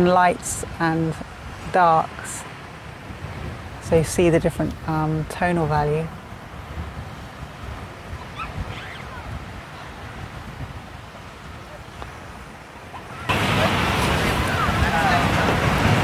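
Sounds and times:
distant surf rushing: 0:00.0 - 0:16.0
wind rumble on microphone: 0:00.0 - 0:16.0.

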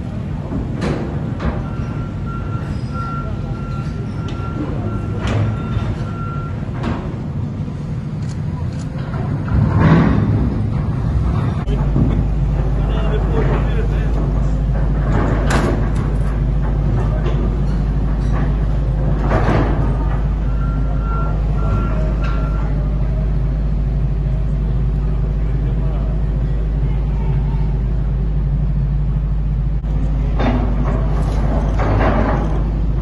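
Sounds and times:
heavy machinery engine drone: 0:00.0 - 0:33.0.

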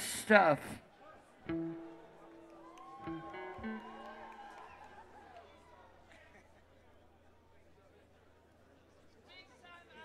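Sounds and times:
guitar notes picked: 0:01.5 - 0:05.0.

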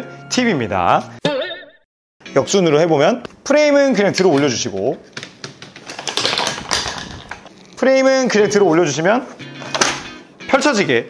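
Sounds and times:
stroller frame clicking and rattling: 0:05.6 - 0:07.4.

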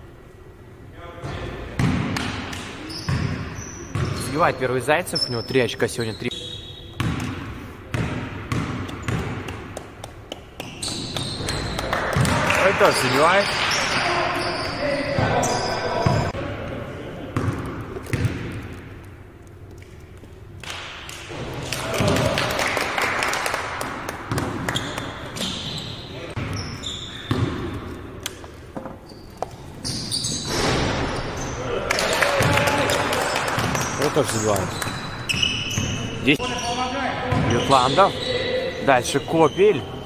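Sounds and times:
basketball bouncing on wooden floor: 0:07.0 - 0:12.5, 0:17.4 - 0:18.8, 0:27.3 - 0:27.8
players calling out: 0:10.7 - 0:17.4.

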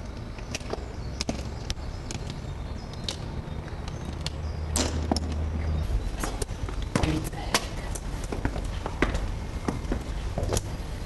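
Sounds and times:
footsteps on concrete stairs: 0:06.0 - 0:11.0.

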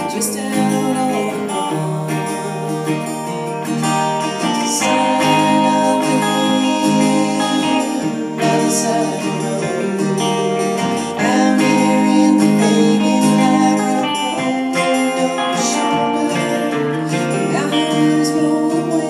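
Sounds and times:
electric guitar: 0:00.0 - 0:19.0
strummed acoustic guitar: 0:00.0 - 0:19.0.

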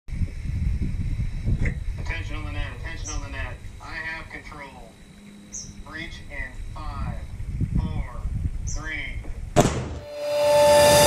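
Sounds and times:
wind buffeting microphone: 0:00.1 - 0:04.2, 0:05.0 - 0:09.6.

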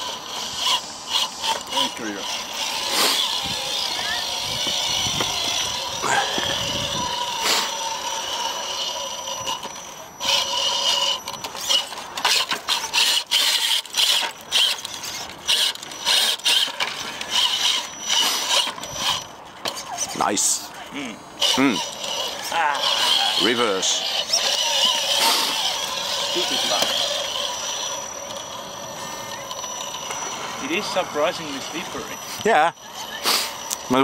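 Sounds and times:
electric motor and gears whining: 0:00.0 - 0:34.0.

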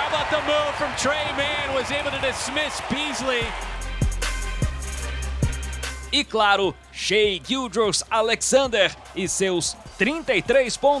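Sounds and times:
music with deep bass: 0:03.4 - 0:11.0.

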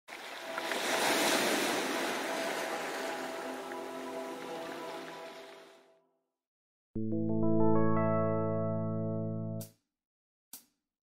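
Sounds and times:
rushing water whoosh: 0:00.1 - 0:05.7.

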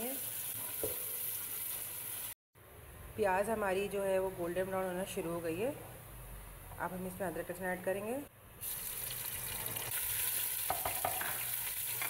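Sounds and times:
onions sizzling in hot oil: 0:00.0 - 0:02.4, 0:08.6 - 0:12.0.

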